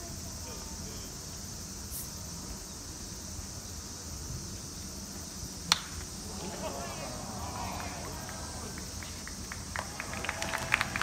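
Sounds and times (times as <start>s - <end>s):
ballpark hum: 5.5s - 11.0s
spectators clapping: 6.3s - 11.0s.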